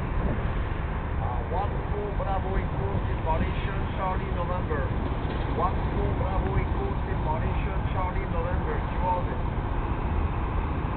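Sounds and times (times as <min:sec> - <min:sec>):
wind rumble on microphone: 0:00.0 - 0:10.9.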